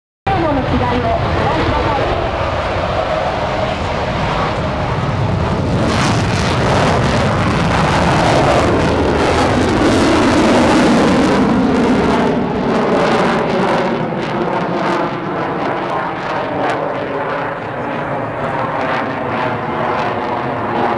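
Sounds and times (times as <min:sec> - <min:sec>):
jet flying overhead: 0:00.3 - 0:20.9.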